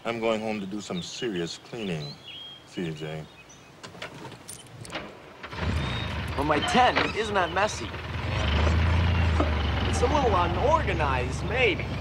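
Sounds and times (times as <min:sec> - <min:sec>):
keys clicking and rattling: 0:04.4 - 0:05.0
vehicle engine starting and running: 0:05.4 - 0:12.0.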